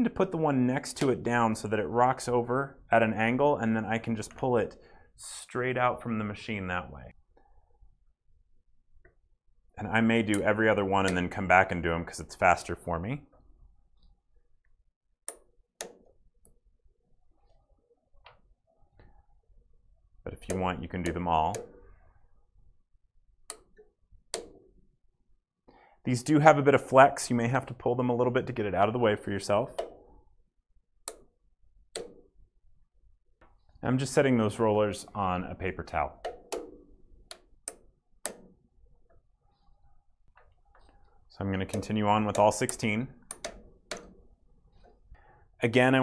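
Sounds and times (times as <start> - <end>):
sharp plastic clicks: 41.7 - 44.9.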